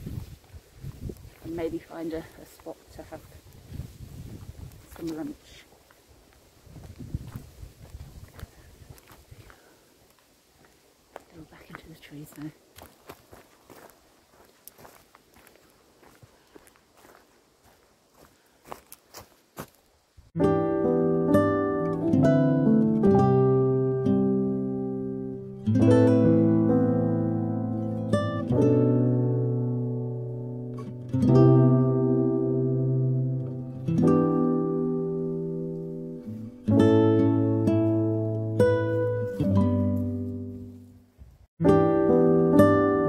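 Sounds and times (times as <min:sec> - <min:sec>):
footsteps on leafy path: 0:00.0 - 0:20.0, 0:38.0 - 0:40.9
plucked string music: 0:20.4 - 0:41.0, 0:41.6 - 0:43.0.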